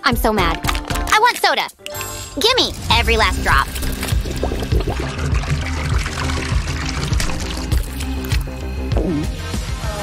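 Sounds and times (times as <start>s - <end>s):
background music with bass line: 1.9s - 10.0s
soda pouring from a can: 3.4s - 8.6s.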